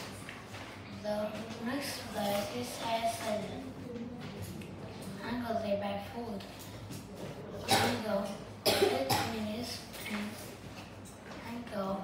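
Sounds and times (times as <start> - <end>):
boy coughing: 7.6 - 9.5.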